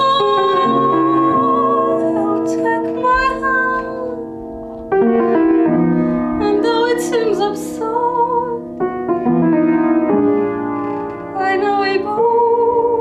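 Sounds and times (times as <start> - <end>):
person singing with vibrato: 0.0 - 4.2
upright piano chords: 0.0 - 13.0.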